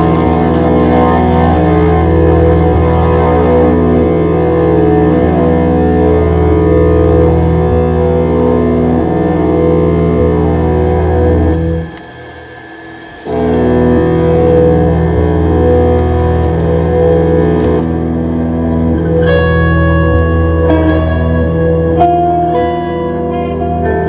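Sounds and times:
deep low hum: 0.0s - 24.0s
electric guitars droning chords: 0.0s - 24.0s.

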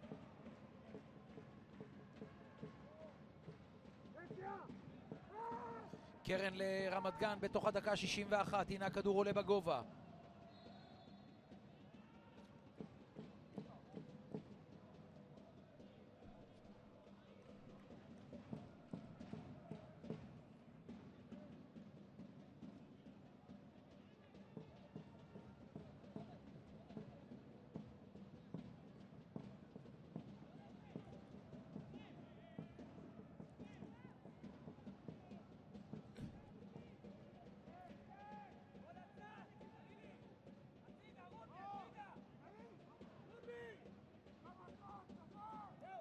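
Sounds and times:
distant voices and shouts: 4.2s - 7.7s.

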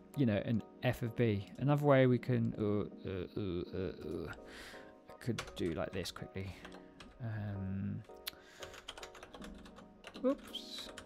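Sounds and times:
quiet background music: 0.0s - 11.0s
computer keyboard typing: 5.3s - 7.2s, 8.1s - 11.0s.

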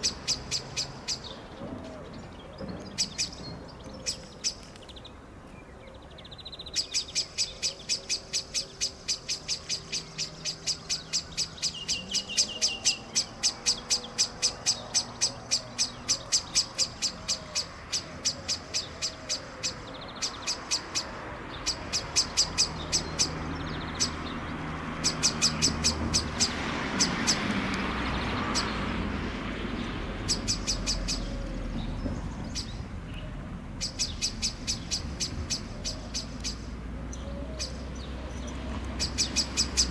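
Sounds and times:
blackbird alarm call notes: 0.0s - 39.9s.

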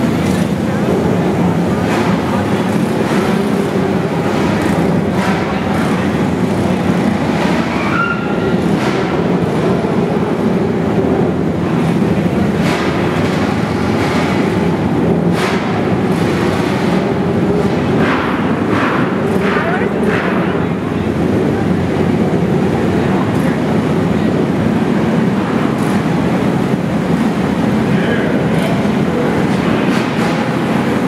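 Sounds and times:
kart engines droning: 0.0s - 31.0s.

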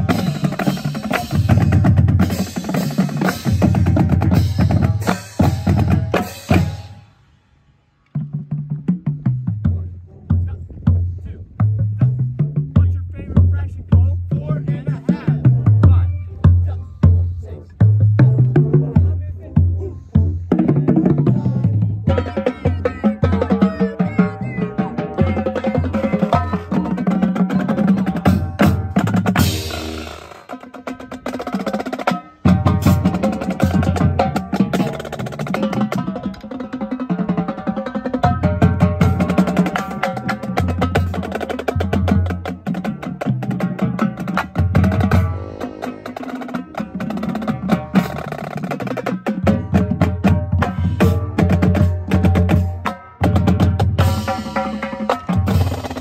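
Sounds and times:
marching drumline playing: 0.0s - 7.0s, 11.6s - 56.0s.

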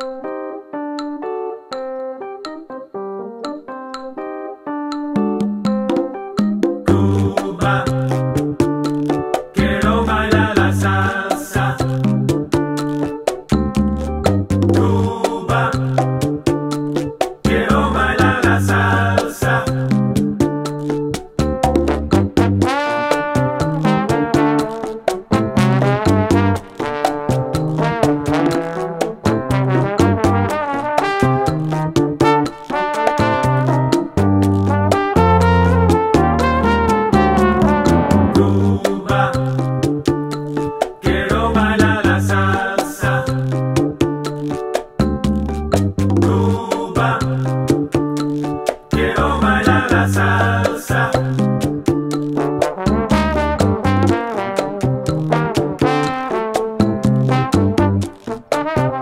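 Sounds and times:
electric keyboard playing piano chords: 0.0s - 7.4s, 12.1s - 15.0s, 19.9s - 38.4s, 39.5s - 41.0s, 43.5s - 46.4s, 47.6s - 49.0s, 51.4s - 58.5s
latin band with steady beat: 5.4s - 11.7s, 12.3s - 59.0s.

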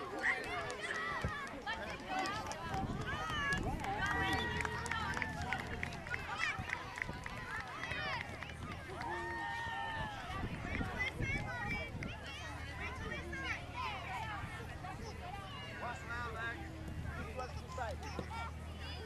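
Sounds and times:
children calling and chattering: 0.0s - 19.0s.

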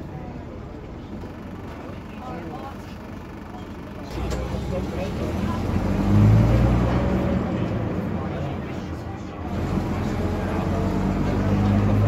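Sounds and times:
bus diesel engine rumble: 0.0s - 12.0s
passengers chatting: 0.0s - 12.0s.

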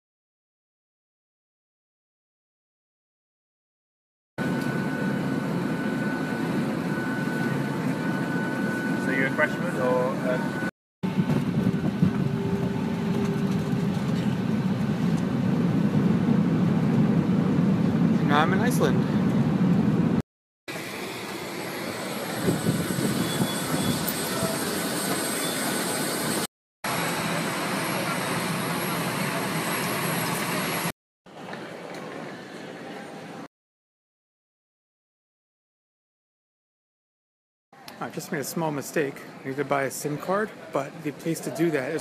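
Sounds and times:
jet engine whine: 4.4s - 30.9s.

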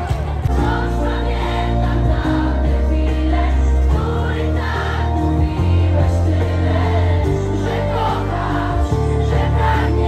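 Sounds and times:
crowd singing along: 0.0s - 10.0s
loud pop music with heavy bass: 0.0s - 10.0s.

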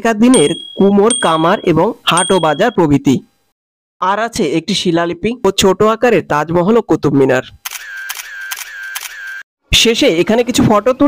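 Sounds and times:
person speaking: 0.0s - 3.3s
camera shutter clicks: 7.7s - 9.4s.

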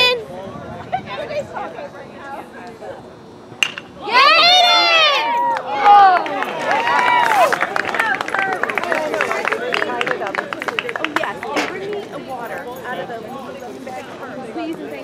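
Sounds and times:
metal bat hitting ball: 3.6s - 4.0s
people shouting and cheering: 3.8s - 10.1s
people clapping: 5.4s - 12.1s.

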